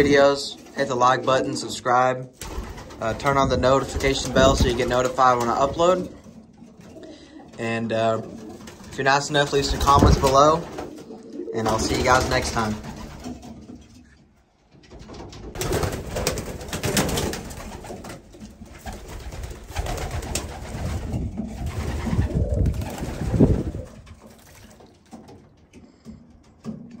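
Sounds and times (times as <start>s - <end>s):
pigeons cooing: 2.5s - 12.2s, 17.6s - 24.4s.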